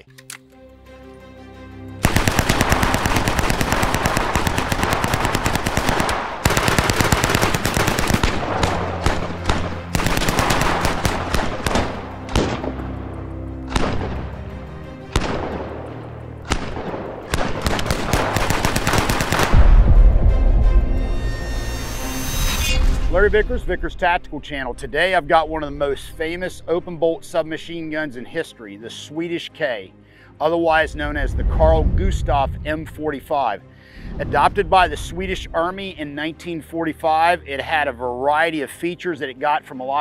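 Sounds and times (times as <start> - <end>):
background music: 0.0 - 40.0
submachine gun firing bursts: 2.0 - 12.6, 16.5 - 19.6
deep boom: 19.5 - 21.1, 30.8 - 33.0.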